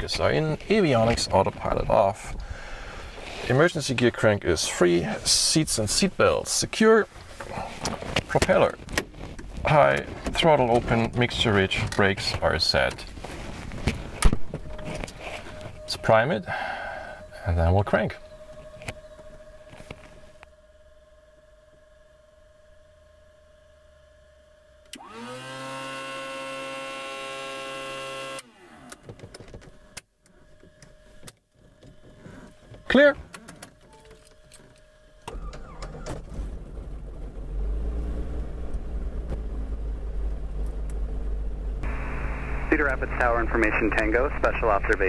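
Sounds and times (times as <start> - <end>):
electric fuel pump whining: 13.6 - 37.6.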